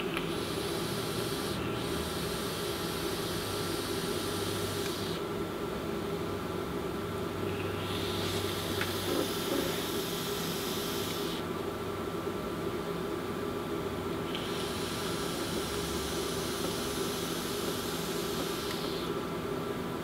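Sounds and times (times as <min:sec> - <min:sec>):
vaporizer coil sizzling hiss: 0:00.0 - 0:05.6, 0:07.3 - 0:12.0, 0:13.0 - 0:20.0.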